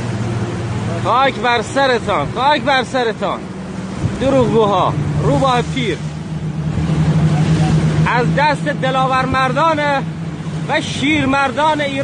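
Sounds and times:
speedboat engine running: 0.0 - 12.0
water rushing against hull: 0.0 - 12.0.

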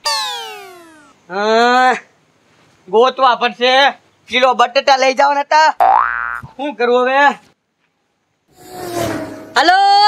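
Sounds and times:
cartoon boing sound effect: 0.0 - 1.1, 5.8 - 6.5.

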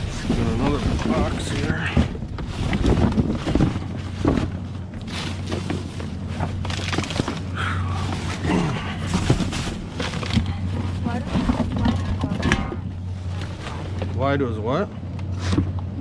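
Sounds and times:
boxes and bags rustling: 0.0 - 16.0
steady low hum: 0.0 - 16.0.

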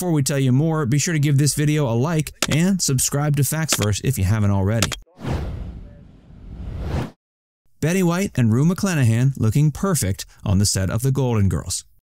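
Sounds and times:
whoosh sound effect: 5.1 - 7.2.

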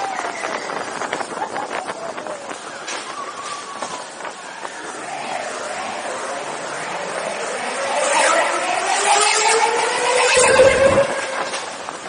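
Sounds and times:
roller coaster rattling on track: 0.0 - 7.3, 10.3 - 12.0.

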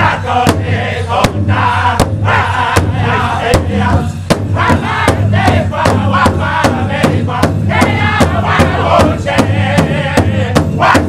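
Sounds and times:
large drum struck with sticks: 0.0 - 11.0
men singing high in unison: 0.0 - 11.0.

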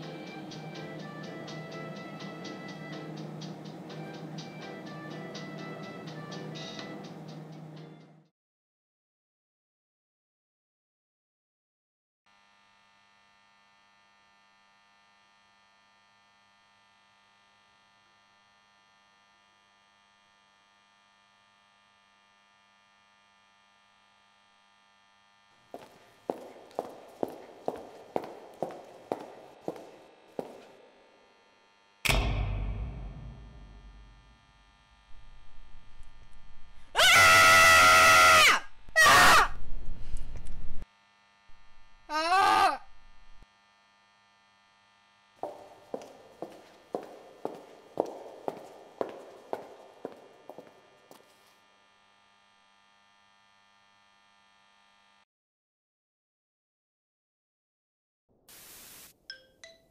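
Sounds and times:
harsh electric buzzes: 12.3 - 55.2
loud thunk with deep rumble: 32.1 - 34.3.

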